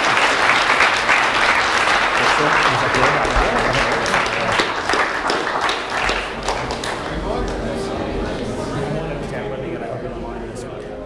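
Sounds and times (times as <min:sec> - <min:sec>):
audience applause: 0:00.0 - 0:08.8.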